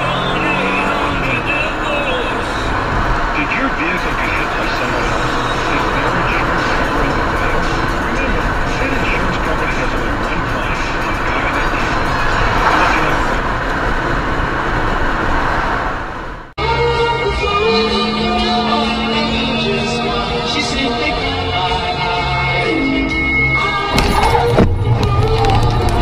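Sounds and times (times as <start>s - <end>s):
indistinct voices: 0.0s - 14.3s, 16.6s - 26.0s
car engine and road noise: 0.0s - 26.0s.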